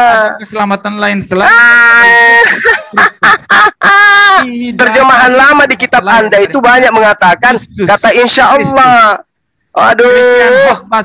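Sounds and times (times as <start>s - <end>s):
person shouting: 1.5s - 2.5s, 10.0s - 10.9s.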